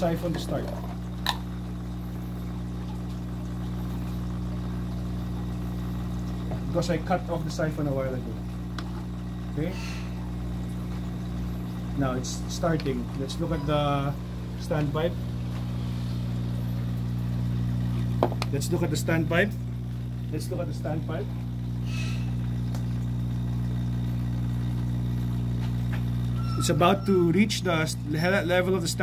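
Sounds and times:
low mechanical hum: 0:00.0 - 0:29.0.

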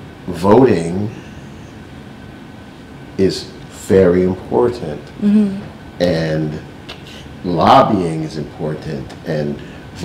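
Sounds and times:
low room hum and hiss: 0:00.0 - 0:10.0.

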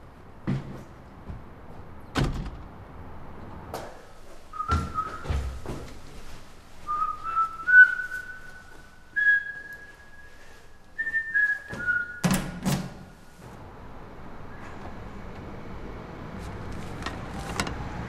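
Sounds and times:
man whistling slow tune: 0:06.9 - 0:12.3.

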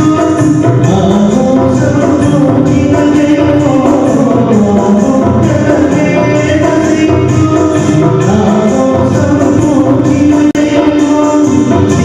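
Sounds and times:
man singing into a microphone: 0:00.0 - 0:12.0
steady rhythm accompaniment: 0:00.0 - 0:12.0.

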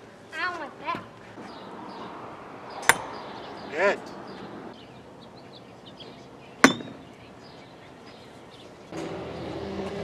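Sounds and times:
quiet outdoor background: 0:00.0 - 0:10.0.

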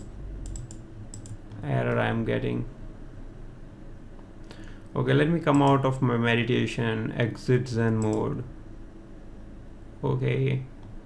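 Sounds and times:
computer keyboard clicks: 0:00.0 - 0:01.4
man talking: 0:01.6 - 0:02.7, 0:05.0 - 0:08.5, 0:10.0 - 0:10.7.

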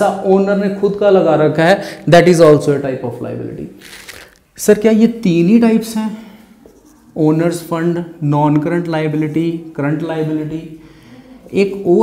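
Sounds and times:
man speaking: 0:00.0 - 0:04.0, 0:04.6 - 0:06.4, 0:07.1 - 0:10.8, 0:11.4 - 0:12.0
marker scratching on whiteboard: 0:06.5 - 0:08.2.

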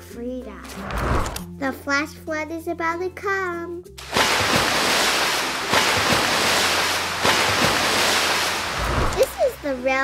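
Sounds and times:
water rushing down rocks: 0:04.0 - 0:10.0.

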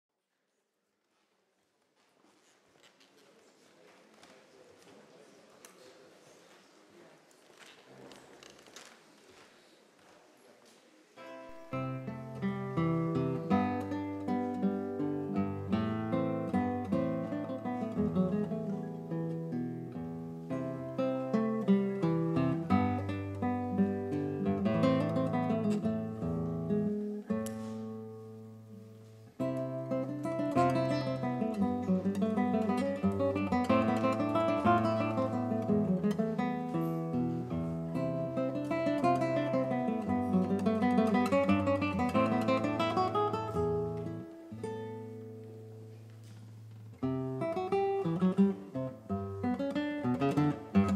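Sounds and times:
classical guitar fingerpicking: 0:11.2 - 0:50.9.

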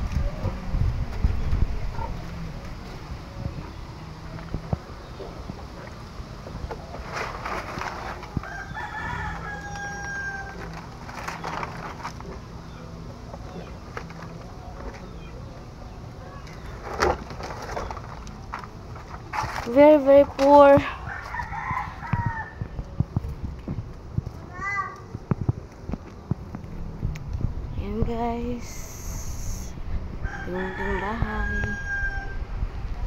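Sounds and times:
rooster crowing: 0:08.4 - 0:10.8, 0:21.0 - 0:22.8, 0:30.2 - 0:32.6
footsteps on bare ground: 0:16.6 - 0:29.0.

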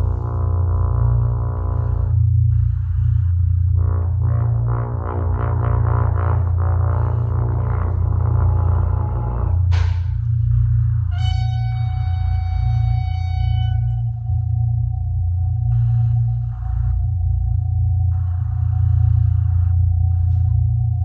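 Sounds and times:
deep low drone: 0:00.0 - 0:21.0
pulsing horn tone: 0:00.0 - 0:21.0
steady electronic tone: 0:00.0 - 0:21.0
high sustained tones: 0:06.4 - 0:21.0.

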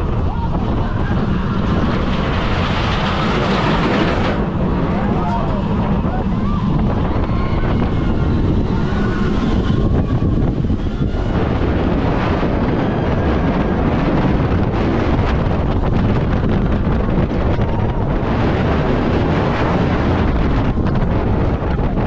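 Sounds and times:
roller coaster rumbling on track: 0:00.0 - 0:22.0
wind rushing over microphone: 0:00.0 - 0:22.0.

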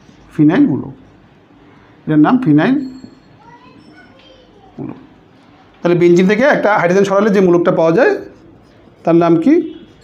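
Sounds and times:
marker squeaking on whiteboard: 0:03.0 - 0:04.4, 0:07.0 - 0:10.0.

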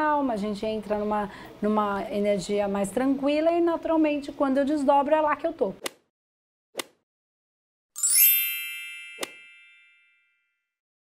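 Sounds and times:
bright ringing chime: 0:08.0 - 0:10.7.

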